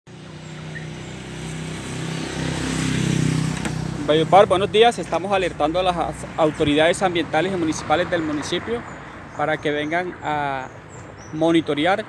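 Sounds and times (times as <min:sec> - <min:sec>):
vehicle engine passing: 0:00.1 - 0:09.2.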